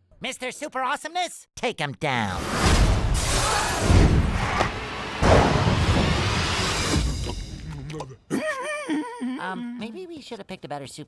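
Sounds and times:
booms and whooshes: 0:02.5 - 0:07.4
heavy hit: 0:02.8 - 0:07.6.

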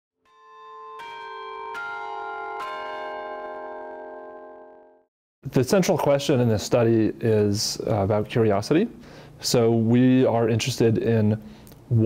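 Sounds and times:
bell strikes ringing: 0:00.3 - 0:05.0.

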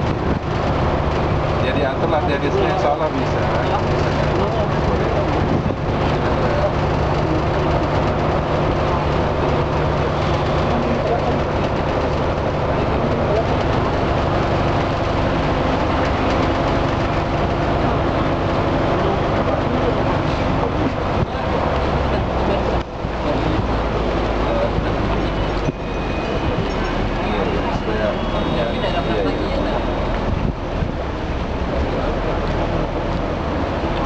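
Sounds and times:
ferry engine droning: 0:00.0 - 0:34.0
voices talking: 0:01.5 - 0:34.0.

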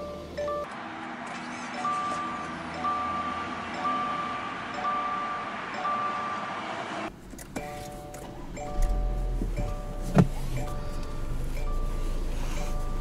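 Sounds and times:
two-tone car warning chime: 0:00.0 - 0:00.8, 0:01.8 - 0:13.0.

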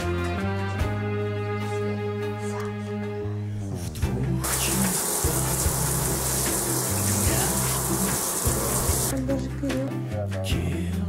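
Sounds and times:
background music with bass line: 0:00.0 - 0:11.0
toilet flushing: 0:04.4 - 0:09.1.

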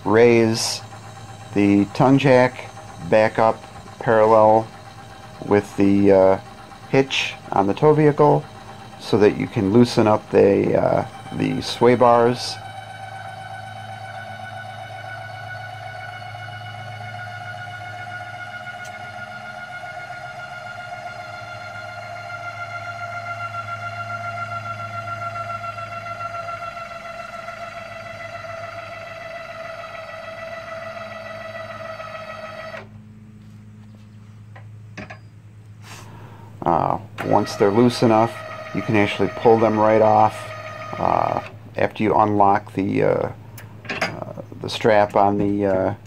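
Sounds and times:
electric jack motor whining: 0:00.0 - 0:35.1, 0:35.7 - 0:46.0.

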